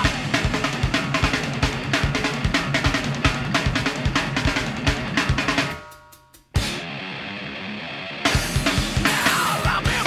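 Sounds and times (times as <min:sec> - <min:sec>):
fast rock drum beats: 0:00.0 - 0:10.0.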